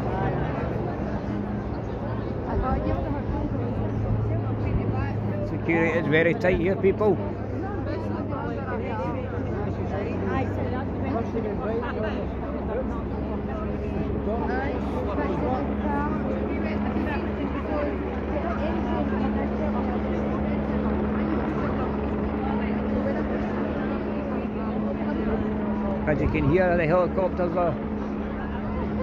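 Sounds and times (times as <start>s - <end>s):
crowd chatter: 0.0s - 29.0s
helicopter drone overhead: 0.0s - 29.0s.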